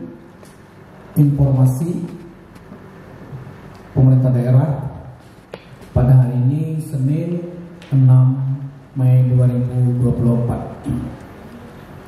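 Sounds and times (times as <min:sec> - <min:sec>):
low room hum: 0:00.0 - 0:12.0
man speaking over microphone: 0:01.2 - 0:02.3, 0:04.0 - 0:05.2, 0:05.9 - 0:11.2.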